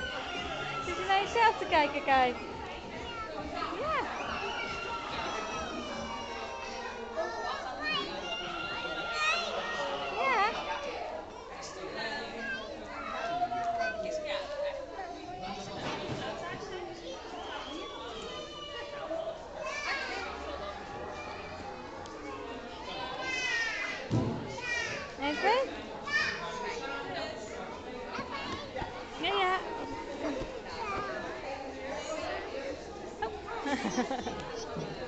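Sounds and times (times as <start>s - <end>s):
children and adults talking: 0.0s - 35.0s
many overlapping voices: 0.0s - 35.0s.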